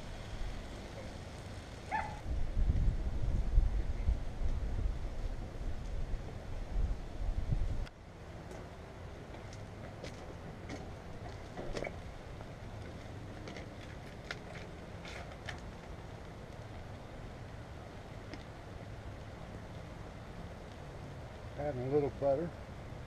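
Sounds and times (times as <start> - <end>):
grill low hum: 0.0 - 23.0.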